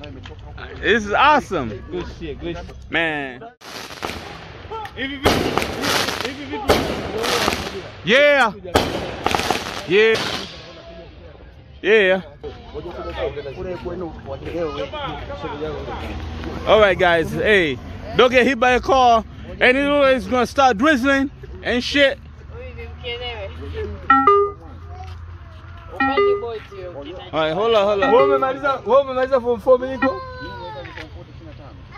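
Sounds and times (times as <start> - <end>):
firework bangs: 3.6 - 11.0
firework crackling: 3.6 - 11.1
people talking: 23.0 - 31.8.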